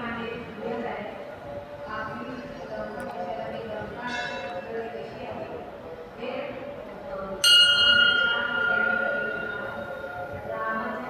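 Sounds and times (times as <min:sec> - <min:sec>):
temple bell ringing: 0:07.4 - 0:11.0.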